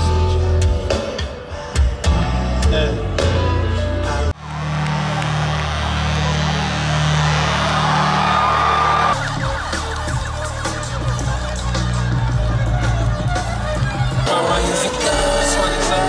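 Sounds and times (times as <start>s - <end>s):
crowd noise: 0.0s - 16.0s
live concert music: 0.0s - 16.0s.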